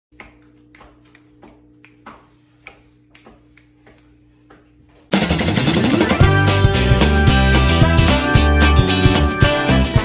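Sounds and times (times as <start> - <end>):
fingers snapping: 0.2 - 2.0, 2.6 - 4.1.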